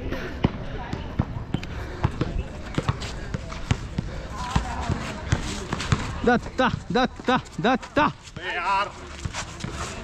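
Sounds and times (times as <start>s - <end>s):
basketball bouncing on court: 2.0s - 6.9s.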